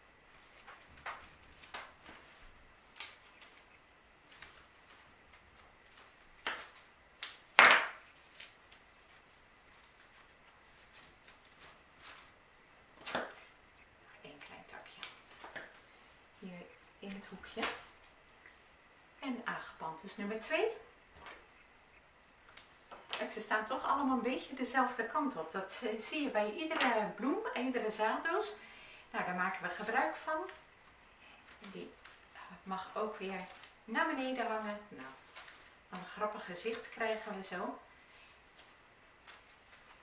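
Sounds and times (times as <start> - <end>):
leafy sprigs clicking and rustling: 0.3 - 18.6, 21.1 - 28.5, 29.3 - 40.0.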